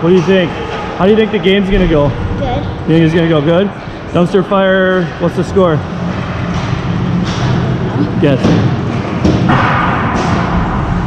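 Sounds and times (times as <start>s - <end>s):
ice rink hum: 0.0s - 11.0s.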